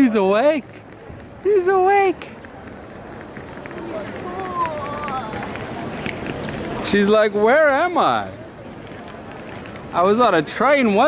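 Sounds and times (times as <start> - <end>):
crowd background noise: 0.0 - 11.0.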